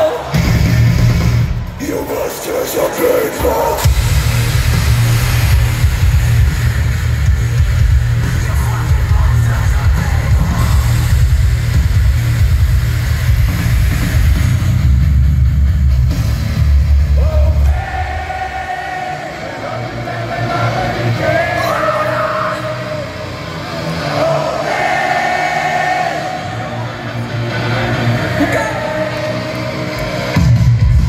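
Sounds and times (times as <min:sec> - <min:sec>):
heavy metal band playing live: 0:00.0 - 0:31.0.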